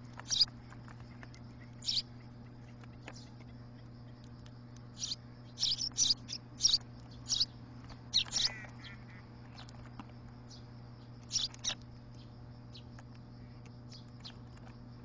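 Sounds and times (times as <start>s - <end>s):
sparrows chirping: 0.0s - 15.0s.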